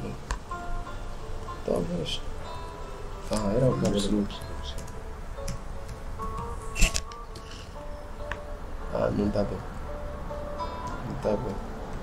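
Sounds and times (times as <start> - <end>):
quiet tinkly background music: 0.0 - 12.0
computer keyboard keystrokes: 4.7 - 6.5.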